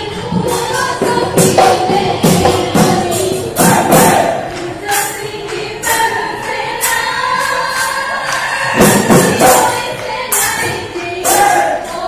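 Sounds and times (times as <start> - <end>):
group of voices singing: 0.0 - 12.0
sharp percussion strikes: 0.0 - 12.0.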